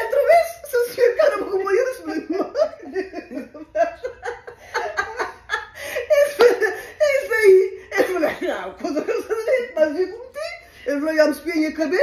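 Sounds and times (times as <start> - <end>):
woman telling a story: 0.0 - 3.2, 6.1 - 12.0.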